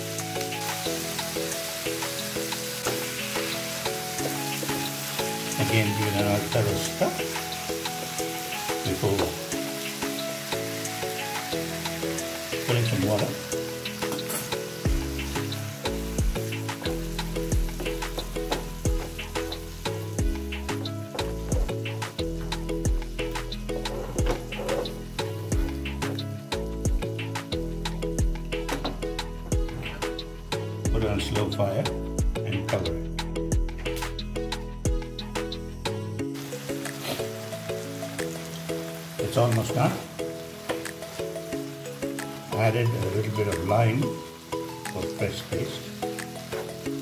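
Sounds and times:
liver sizzling in a pan: 0:00.0 - 0:30.8, 0:33.6 - 0:47.0
background music: 0:00.0 - 0:47.0
wooden spatula scraping a pan: 0:23.6 - 0:25.1, 0:36.9 - 0:37.4.

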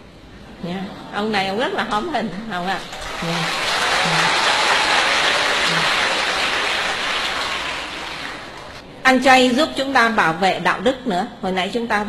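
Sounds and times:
audience applauding: 0:02.8 - 0:08.8.

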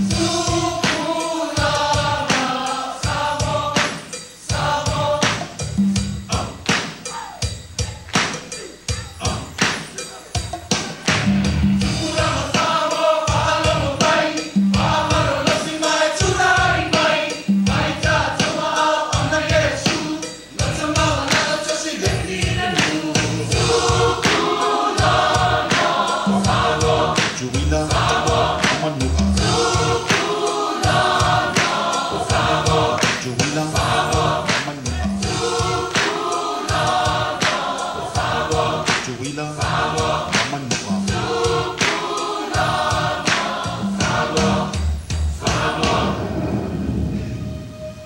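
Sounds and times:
sharp percussive strokes: 0:00.0 - 0:46.5
choir singing: 0:00.0 - 0:48.0.

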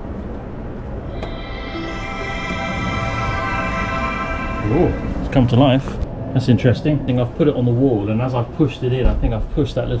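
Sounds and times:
musical start-up chime: 0:01.1 - 0:06.0.

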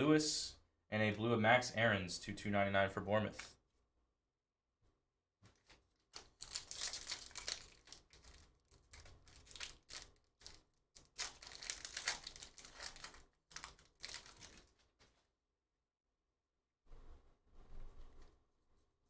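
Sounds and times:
foil wrapper crinkling and tearing: 0:05.6 - 0:15.2.

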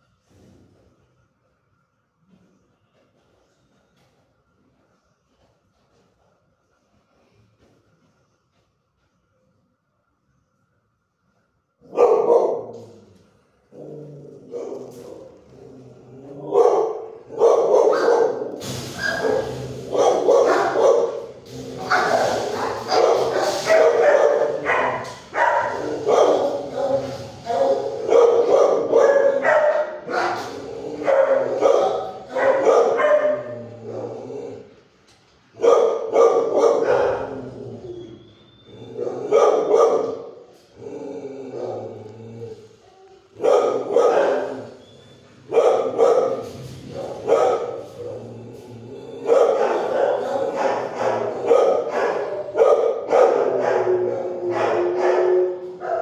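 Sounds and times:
dogs barking: 0:11.9 - 0:13.0, 0:16.4 - 0:34.2, 0:35.6 - 0:37.6, 0:38.9 - 0:40.3, 0:43.4 - 0:44.8, 0:45.5 - 0:48.3, 0:49.2 - 0:56.0.

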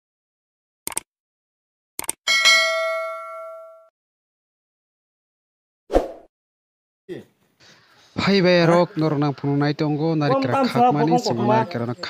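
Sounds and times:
bright bell ding: 0:02.3 - 0:03.9.

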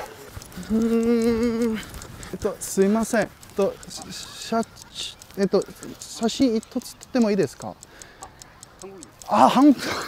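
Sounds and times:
clock ticking: 0:00.0 - 0:10.0.

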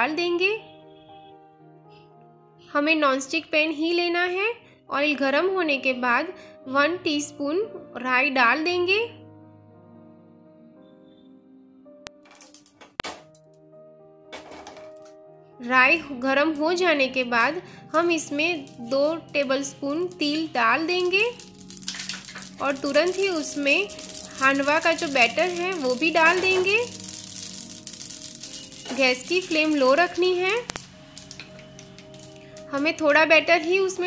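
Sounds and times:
soft background music: 0:00.0 - 0:34.0
mustard seeds crackling in hot oil: 0:12.2 - 0:13.0, 0:15.7 - 0:34.0
sharp pops of seeds: 0:17.4 - 0:33.0.

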